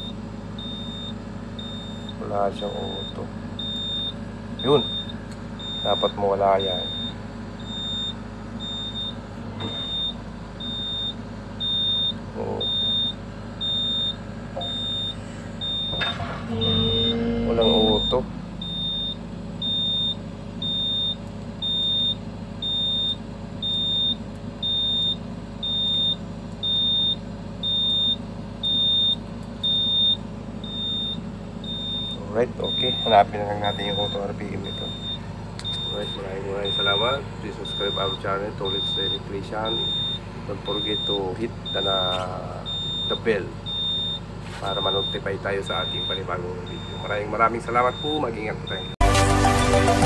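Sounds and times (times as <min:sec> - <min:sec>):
diesel engine running: 0:00.0 - 0:50.0
warning buzzer beeping: 0:00.0 - 0:50.0.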